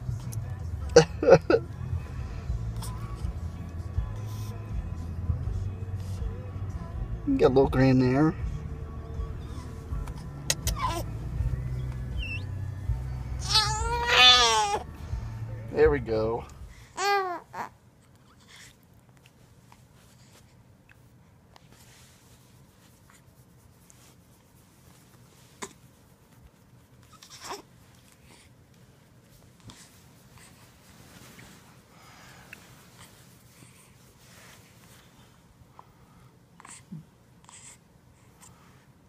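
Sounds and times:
baby soft noises: 10.6s - 11.1s, 16.8s - 18.8s
newborn baby crying: 10.7s - 11.1s, 13.4s - 14.9s, 16.9s - 17.8s.

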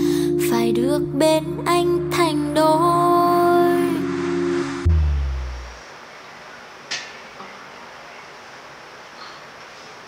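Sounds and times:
song accompaniment chord: 0.0s - 5.8s
sudden deep boom: 4.8s - 5.8s.

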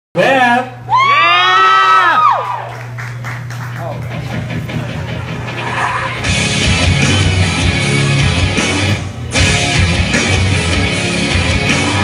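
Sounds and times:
low electrical hum: 0.2s - 9.4s.

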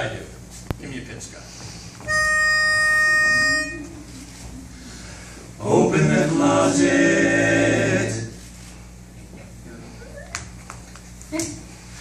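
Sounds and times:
pitch pipe note: 2.0s - 4.2s.

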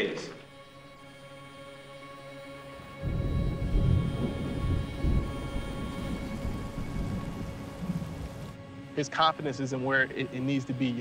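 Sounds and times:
dark soundtrack music: 0.0s - 11.0s
rain: 2.8s - 9.0s
thunder rumbling: 3.0s - 8.6s.

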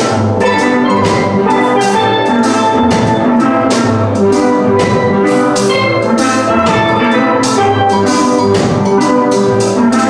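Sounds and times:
steel drum band playing reggae: 0.0s - 10.0s.

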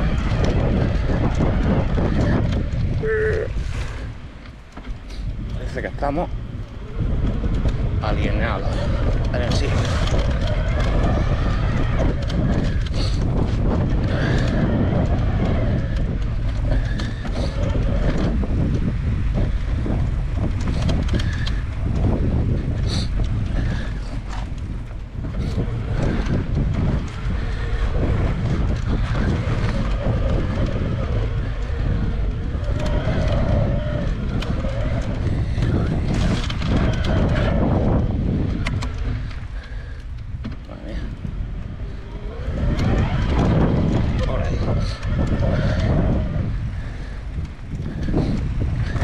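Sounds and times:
bike rattling over bumps: 0.0s - 49.0s
bike tyres rumbling on dirt: 0.0s - 49.0s.

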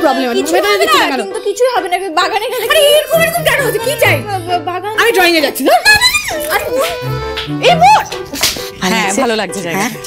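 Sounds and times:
background music with low notes: 0.0s - 10.0s.

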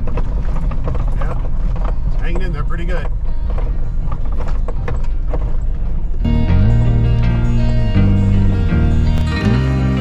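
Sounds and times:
knocks and rattles over bumps: 0.0s - 6.3s
vehicle cab rumble: 0.0s - 10.0s
guitar music: 5.8s - 10.0s.

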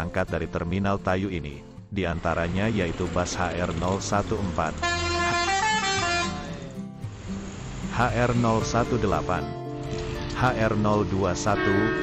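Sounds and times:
musical bus air horn tune: 4.8s - 6.7s, 11.4s - 12.0s.

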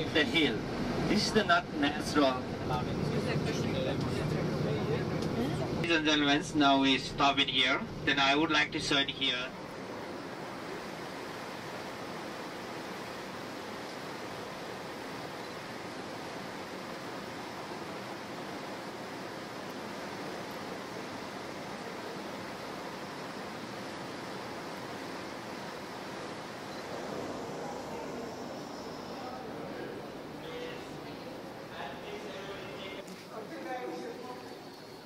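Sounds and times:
steady rushing hiss: 5.9s - 34.2s.

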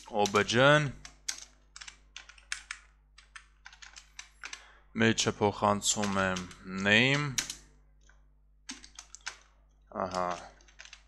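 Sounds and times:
typing on computer keyboard: 0.0s - 4.6s, 6.0s - 6.6s, 7.4s - 7.6s, 8.7s - 9.5s, 10.1s - 11.0s.

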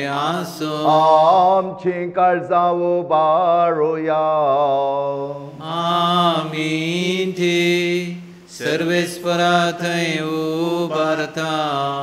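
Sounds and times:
man chanting a prayer: 0.0s - 12.0s.

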